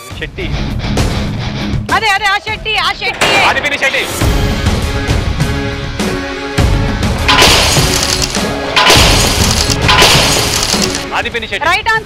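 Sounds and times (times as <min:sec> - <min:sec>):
background music: 0:00.0 - 0:12.0
crash and shatter effect: 0:07.3 - 0:11.0.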